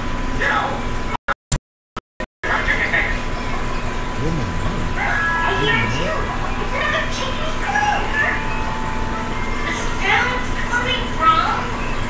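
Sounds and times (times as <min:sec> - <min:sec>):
steady background hum: 0:03.4 - 0:12.0
person's short vocal sounds: 0:04.2 - 0:06.4.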